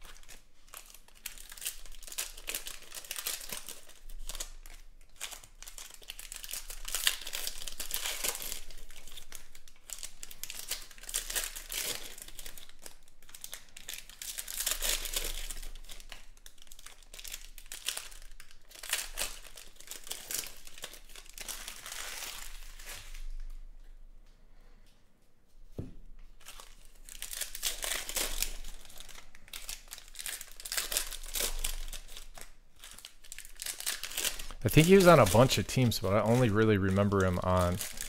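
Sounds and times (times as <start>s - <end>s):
foil wrappers crinkling: 0.0s - 23.5s, 26.4s - 38.0s.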